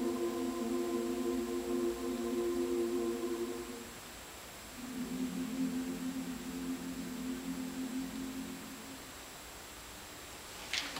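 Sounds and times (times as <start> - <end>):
women's choir holding a chord: 0.0 - 4.0, 4.7 - 9.1.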